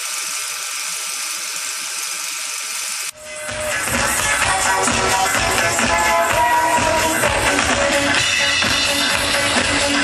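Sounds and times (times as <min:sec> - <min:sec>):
electronic dance music: 0:03.1 - 0:10.0.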